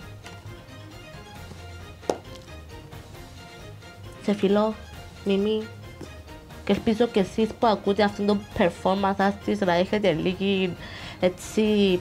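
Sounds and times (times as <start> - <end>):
soft background music: 0.0 - 12.0.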